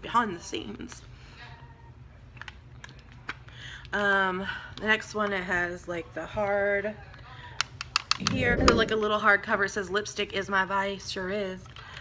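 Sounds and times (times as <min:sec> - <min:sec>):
faint low hum: 0:08.1 - 0:09.4.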